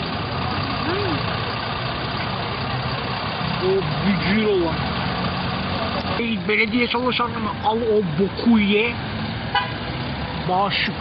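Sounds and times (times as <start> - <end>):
low engine rumble: 0.0 - 11.0.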